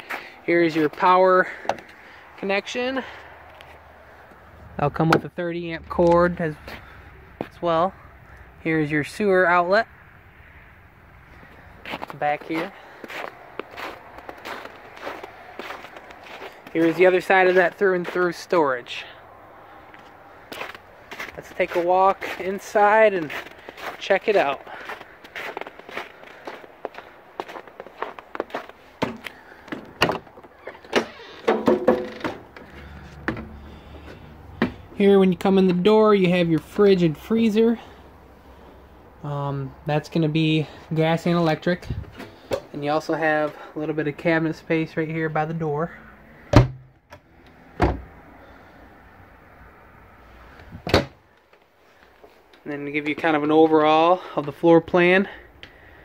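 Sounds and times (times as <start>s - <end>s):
footsteps on metal steps: 11.8s - 18.2s, 19.9s - 34.9s
trailer door knocks and clicks: 29.0s - 32.6s, 46.5s - 46.9s.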